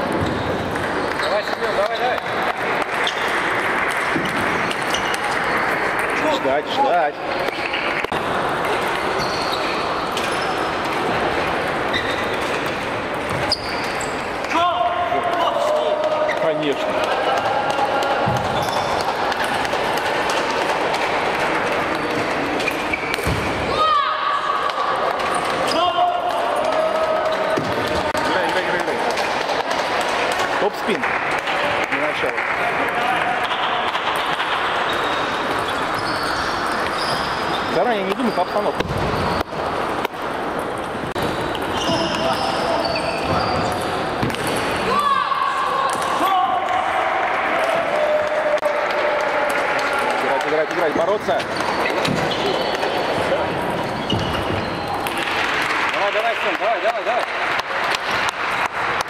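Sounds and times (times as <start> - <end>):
crowd chatter and shouts: 0.0 - 59.0.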